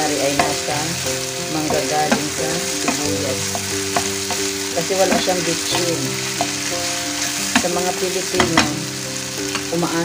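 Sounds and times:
onions sizzling in a pan: 0.0s - 10.0s
utensil clacking against pan: 0.2s - 0.8s, 1.5s - 8.8s.

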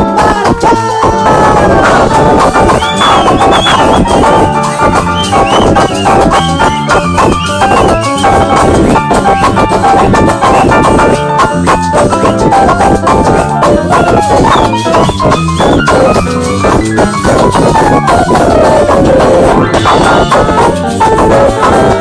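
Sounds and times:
live band playing: 0.0s - 22.0s
saxophone melody: 0.0s - 22.0s.

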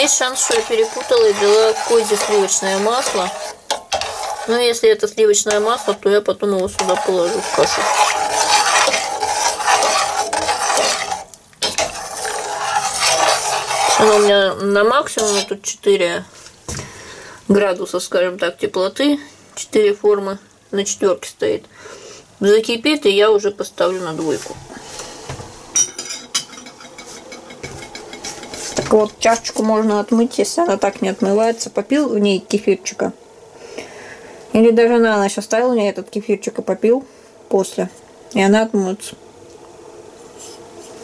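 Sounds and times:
metal spoon scraping saucepan: 0.0s - 15.6s, 25.8s - 30.3s.

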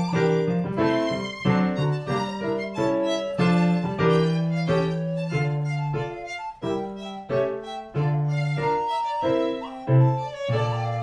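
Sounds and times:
baroque violin and continuo: 0.0s - 11.0s.

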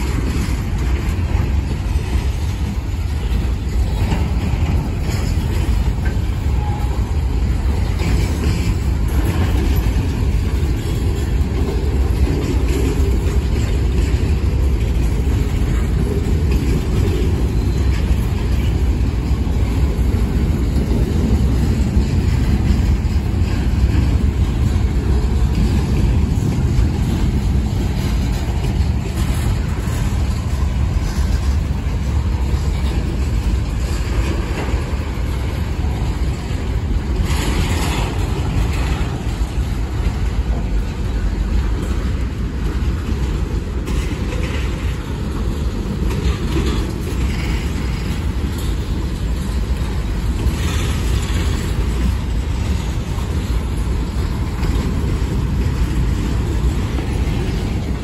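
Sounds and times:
freight train wheels rumbling on rail: 0.0s - 58.0s.

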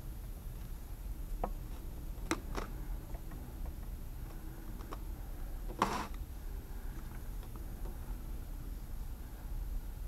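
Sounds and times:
faint high whine: 0.0s - 10.0s
steady low hum: 0.0s - 10.0s
soft clicks and handling noises: 1.4s - 6.2s.

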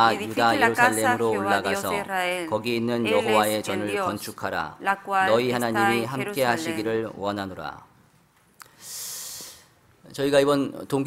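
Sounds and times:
breath drawn in: 8.6s - 9.8s.

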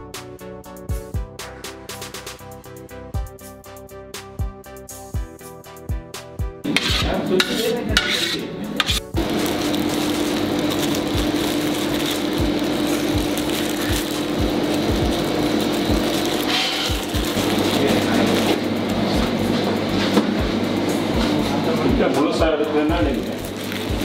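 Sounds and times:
background music with low beat: 0.0s - 24.0s.

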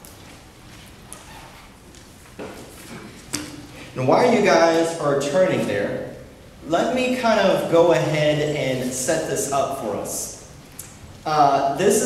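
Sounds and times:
low room noise: 0.0s - 12.0s.

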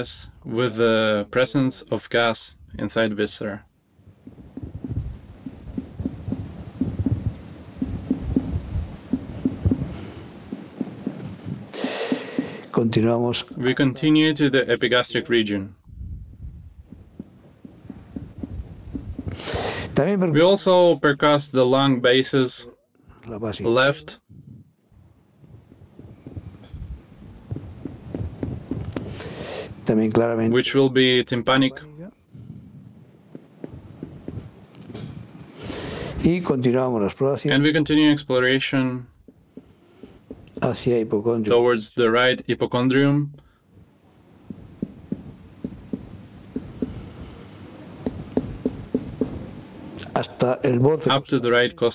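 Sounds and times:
fingers tapping on belly: 4.2s - 12.7s, 16.8s - 19.6s, 26.0s - 29.3s, 33.3s - 34.5s, 39.1s - 40.7s, 44.5s - 47.4s, 48.0s - 49.4s.

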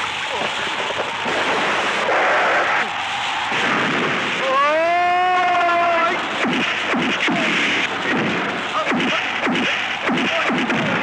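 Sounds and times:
heavy rain: 0.0s - 11.0s
person shouting cry: 4.4s - 5.9s.

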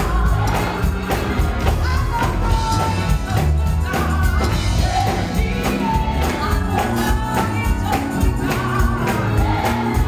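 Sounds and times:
church band with bass: 0.0s - 10.0s
woman singing lead: 0.0s - 10.0s.

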